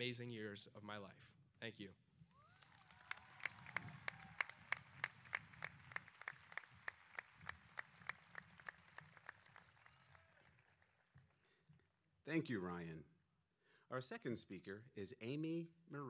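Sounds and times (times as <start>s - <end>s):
audience applauding: 2.4s - 11.9s
clear even claps: 2.6s - 12.0s.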